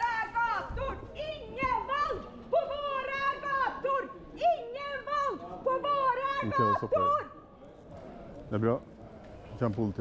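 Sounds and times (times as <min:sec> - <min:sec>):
woman shouting a slogan: 0:00.0 - 0:07.4.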